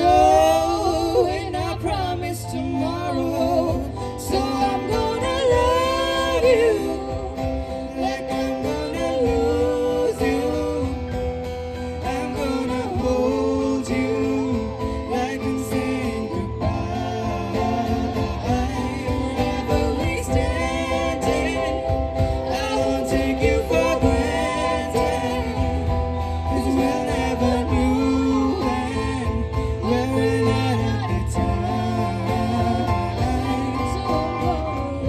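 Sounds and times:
woman singing pop ballad: 0.0 - 35.0.

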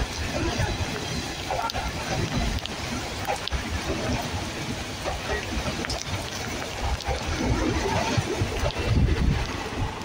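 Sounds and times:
train coaches rushing past: 0.0 - 10.0
wind buffeting microphone: 0.0 - 10.0.

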